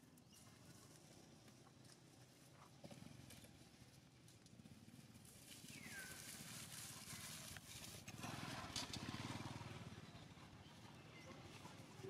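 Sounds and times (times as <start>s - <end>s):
dry leaves rustling and crackling: 5.0s - 8.2s.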